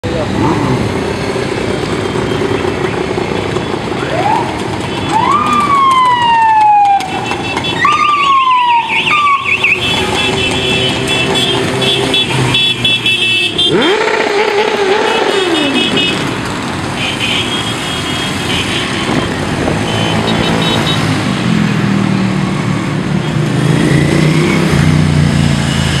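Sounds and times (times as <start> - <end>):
high rising and falling wails: 7.8 - 9.7
motorcycles riding past revving: 13.5 - 16.8.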